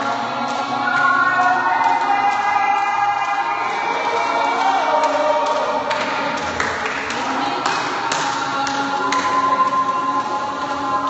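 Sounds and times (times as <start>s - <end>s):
voices holding long notes: 0.0s - 11.0s.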